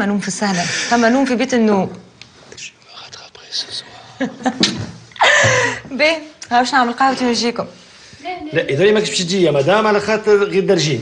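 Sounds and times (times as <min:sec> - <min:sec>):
woman whispering: 0:02.9 - 0:03.8.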